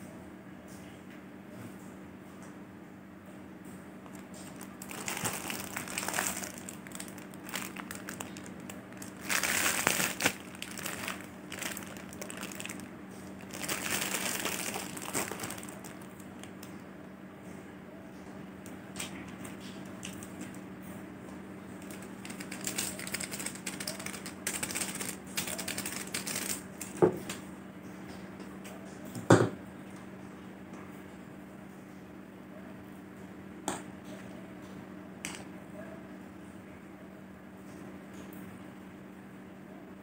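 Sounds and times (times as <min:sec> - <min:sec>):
plastic packets crinkling: 0:04.1 - 0:16.7, 0:19.0 - 0:20.6, 0:21.8 - 0:27.3.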